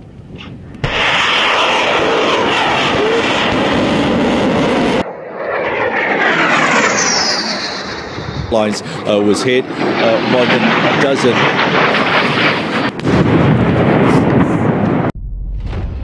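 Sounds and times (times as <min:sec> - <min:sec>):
missile flying past with whistle: 0:00.4 - 0:08.7
rocket motor firing: 0:00.8 - 0:05.0.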